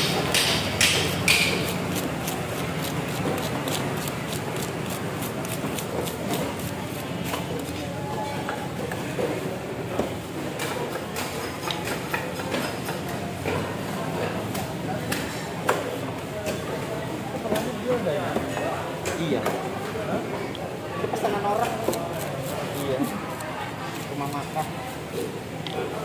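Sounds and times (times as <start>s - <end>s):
fish scaler scraping: 0.9s - 7.9s, 21.5s - 24.8s.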